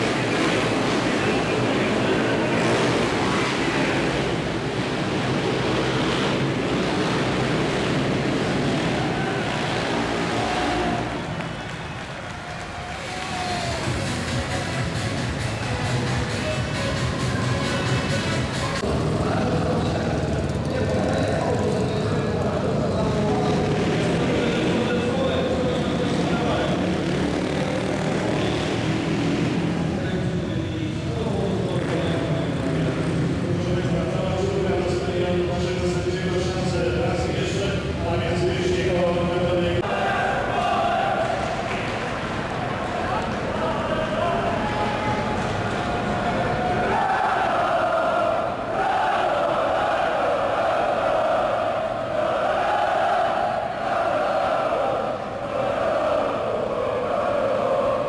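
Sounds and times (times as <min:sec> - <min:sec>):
crowd noise: 0:00.0 - 0:58.0
music over loudspeakers: 0:13.4 - 0:19.0.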